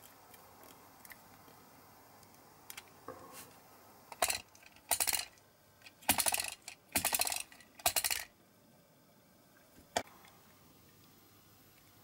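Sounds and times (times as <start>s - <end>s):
model car wheels rattling: 4.2s - 8.3s.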